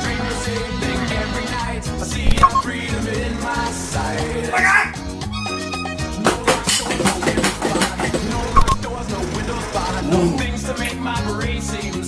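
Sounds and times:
backing music track: 0.0s - 12.0s.

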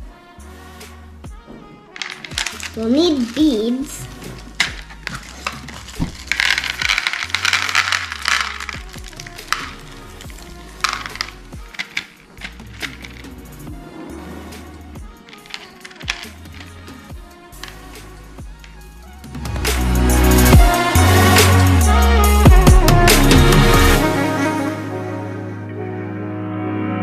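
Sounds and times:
plastic beads rattling in tray: 2.0s - 13.6s, 15.0s - 19.0s
background music with bass line: 16.4s - 25.9s.

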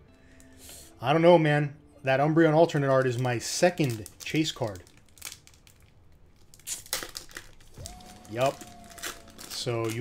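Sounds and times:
foil pack rustling: 2.7s - 10.0s
foil pack ripping: 2.8s - 10.0s.

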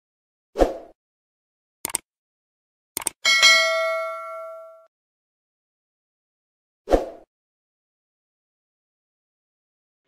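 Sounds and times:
mouse double click: 1.8s - 2.0s, 3.0s - 3.2s
bright notification bell ding: 3.3s - 4.9s.

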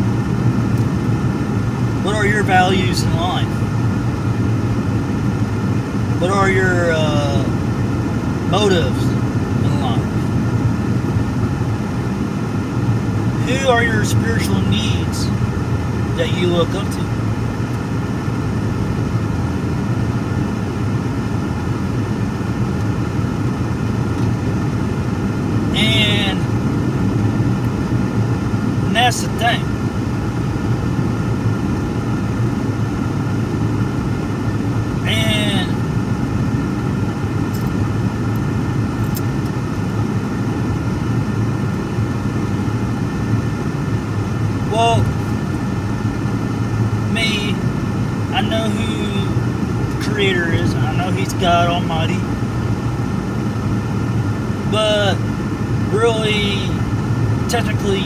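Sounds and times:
car cabin road and engine rumble: 0.0s - 58.0s
driver voice sounds: 1.9s - 3.7s, 5.8s - 10.4s, 13.3s - 18.0s, 25.6s - 26.6s, 28.8s - 29.8s, 34.9s - 35.9s, 44.6s - 45.4s, 46.9s - 52.3s, 54.6s - 58.0s.

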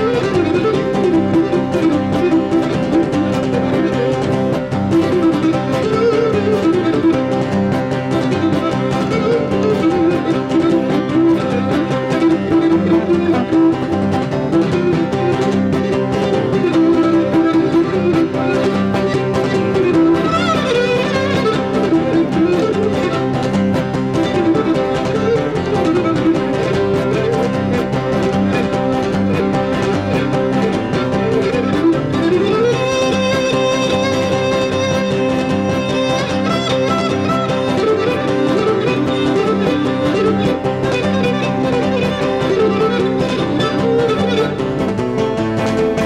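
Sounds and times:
lyra melody: 0.0s - 45.1s
lutes and guitar strumming: 0.0s - 46.0s.

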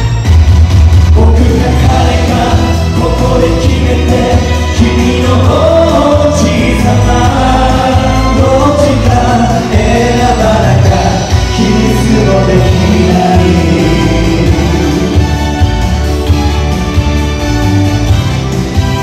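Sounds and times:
backing track with heavy bass: 0.0s - 19.0s
male vocal group singing: 1.2s - 15.5s.

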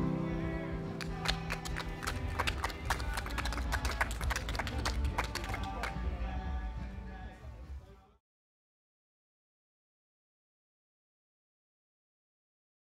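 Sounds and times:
scattered hand clapping: 0.9s - 6.3s.

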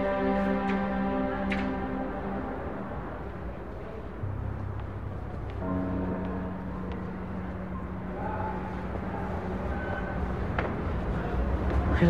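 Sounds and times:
music of sustained held notes: 0.0s - 12.0s.

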